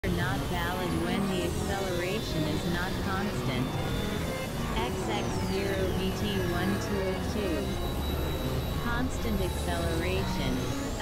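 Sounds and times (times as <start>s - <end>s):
low synthesizer drones: 0.0s - 11.0s
high tone gliding downward: 0.4s - 11.0s.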